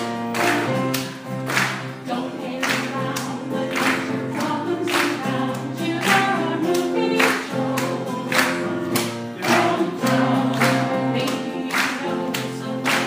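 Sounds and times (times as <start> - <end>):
choir singing: 2.0 - 13.0.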